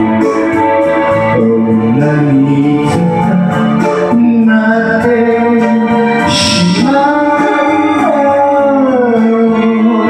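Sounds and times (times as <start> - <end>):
held low note: 6.2 - 8.2
melody line sliding down in pitch: 6.3 - 8.2.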